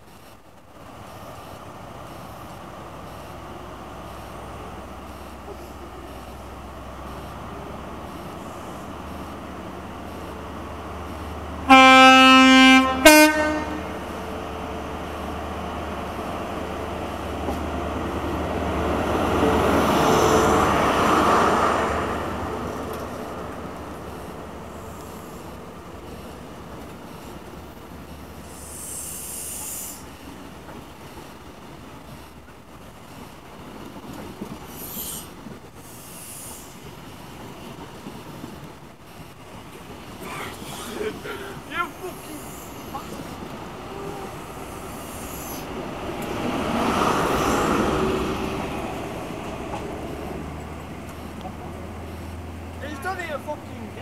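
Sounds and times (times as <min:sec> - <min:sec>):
diesel locomotive passing: 0:00.0 - 0:54.0
train coaches rolling by: 0:00.0 - 0:54.0
two-tone train horn: 0:11.6 - 0:14.1.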